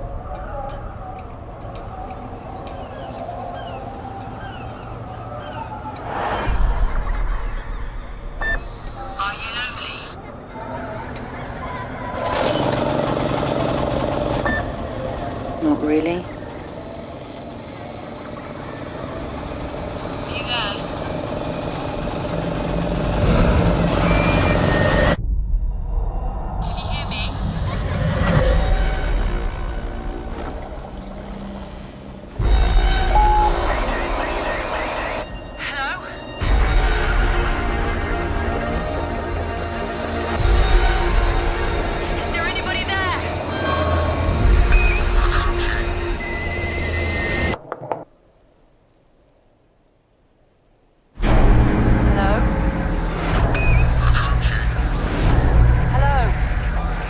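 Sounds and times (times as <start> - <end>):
low rumble: 6.0 - 10.2, 23.0 - 35.4
small engine running: 12.2 - 25.2.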